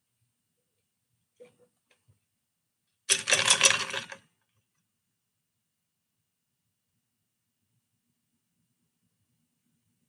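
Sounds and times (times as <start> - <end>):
small hard objects rattling: 3.1 - 4.2.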